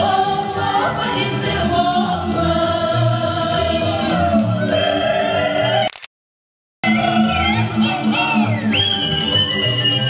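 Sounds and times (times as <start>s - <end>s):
group singing folk song: 0.0s - 5.9s, 6.8s - 10.0s
bass-line accompaniment: 6.8s - 10.0s.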